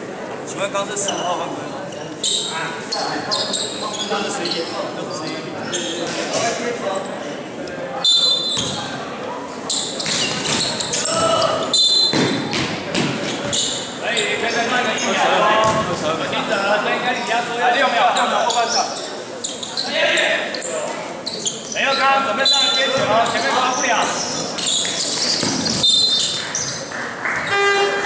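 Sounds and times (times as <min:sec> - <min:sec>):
voices of players and spectators: 0:00.0 - 0:28.0
sneakers squeaking: 0:01.0 - 0:07.2, 0:07.9 - 0:28.0
basketball bouncing on wooden court: 0:12.1 - 0:13.6, 0:15.6 - 0:15.9.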